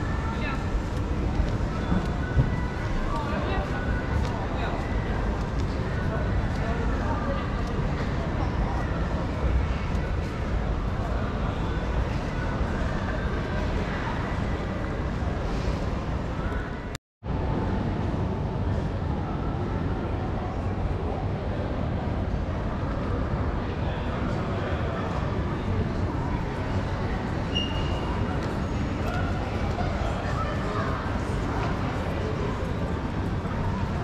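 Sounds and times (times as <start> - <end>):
crowd hubbub echoing in a hall: 0.0 - 34.0.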